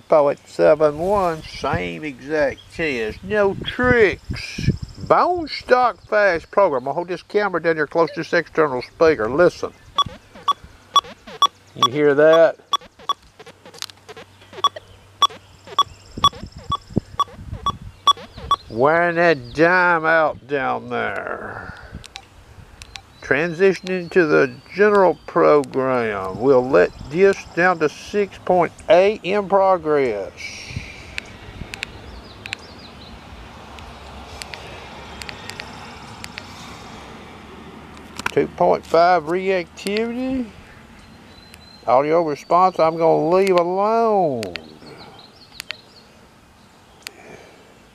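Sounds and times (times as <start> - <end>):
bird chirping: 9.6 - 19.6, 30.8 - 33.2, 40.6 - 43.6, 44.2 - 47.1
button clicks: 10.0 - 13.2
metal detector high-pitched beeps: 10.0 - 13.2, 14.1 - 18.6
lower short blips: 10.0 - 18.7.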